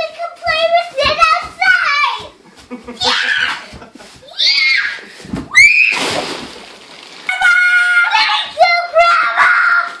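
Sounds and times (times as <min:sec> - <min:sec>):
children squealing: 0:03.0 - 0:03.6, 0:04.3 - 0:06.0.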